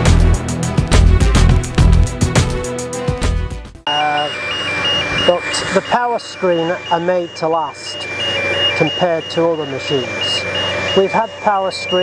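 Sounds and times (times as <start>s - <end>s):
background music: 0.0s - 3.8s
two-tone reversing alarm: 3.9s - 12.0s.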